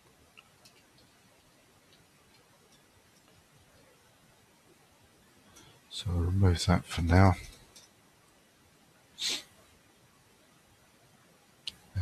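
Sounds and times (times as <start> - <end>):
person sharp breath: 9.2 - 9.5.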